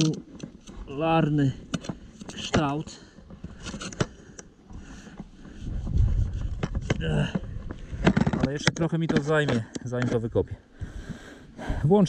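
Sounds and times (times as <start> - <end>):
wind rumbling on microphone: 4.7 - 8.5.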